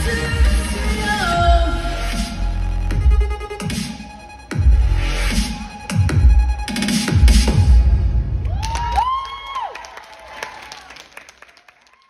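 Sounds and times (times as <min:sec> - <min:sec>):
heavy-bass electronic pop music: 0:00.0 - 0:08.6
audience applause and cheering: 0:08.3 - 0:12.0.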